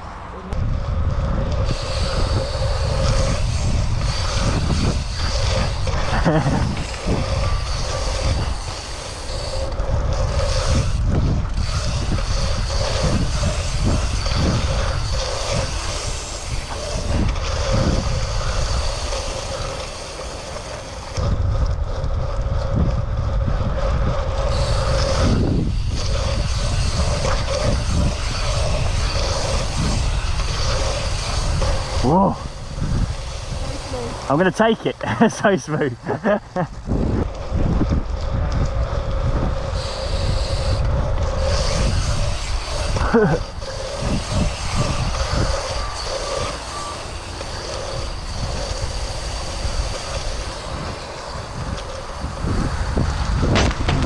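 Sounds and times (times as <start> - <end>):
steady high buzz: 0.0 - 54.0
wind buffeting microphone: 0.0 - 54.0
tyres rolling fast: 0.4 - 54.0.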